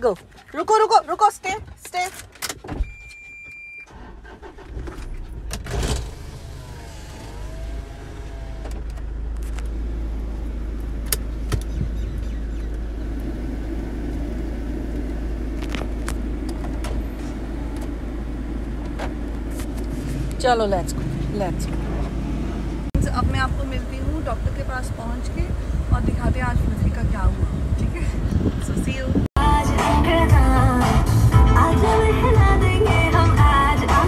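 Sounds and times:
car engine rumble inside cabin: 3.9 - 34.0.

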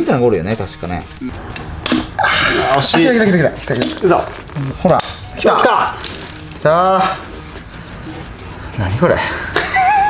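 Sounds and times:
metal clicking and scraping: 6.0 - 6.6.

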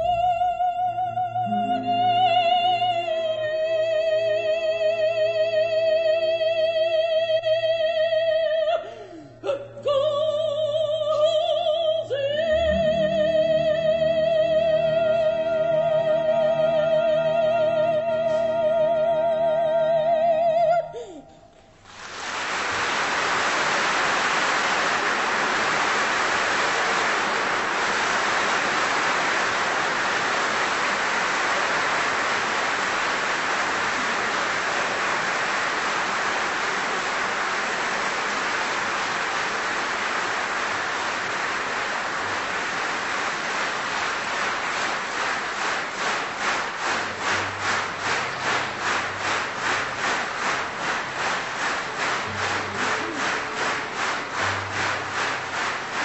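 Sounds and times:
rhythmic clapping in unison: 9.8 - 19.2, 21.8 - 56.0
audience applause: 21.8 - 56.0.

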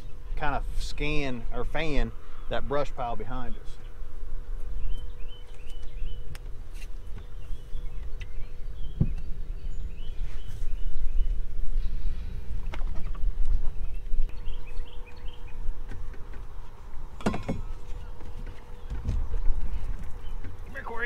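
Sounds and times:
faint steady hum: 0.0 - 21.0
wind rumbling on microphone: 3.3 - 21.0.

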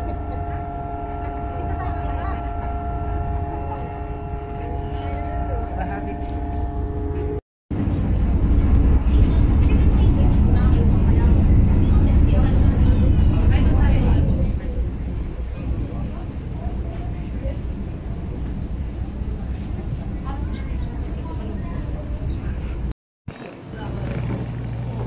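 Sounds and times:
steady whining tones: 0.0 - 22.4
ferry engine rumble: 0.0 - 25.0
voices in background: 9.0 - 25.0.

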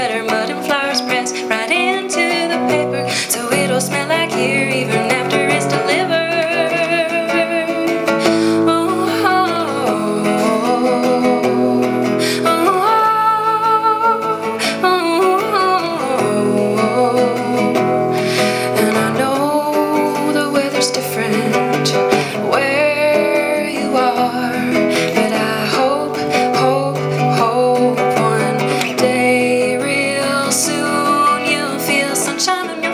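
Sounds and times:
acoustic guitar: 0.0 - 32.9
woman singing: 0.0 - 32.9.

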